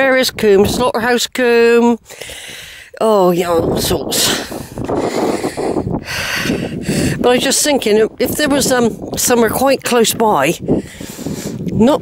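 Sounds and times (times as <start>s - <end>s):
person breathing noisily: 2.0s - 3.0s, 4.4s - 7.2s, 10.6s - 11.6s.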